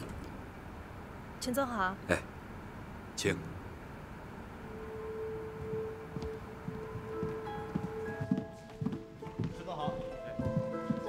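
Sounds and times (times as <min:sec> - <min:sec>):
soft chime-like music: 0:04.9 - 0:11.0
footsteps: 0:05.2 - 0:11.0.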